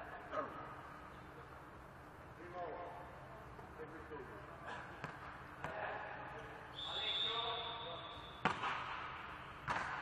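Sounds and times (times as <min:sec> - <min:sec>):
referee's whistle: 0:06.7 - 0:08.4
volleyball being struck: 0:08.3 - 0:10.0.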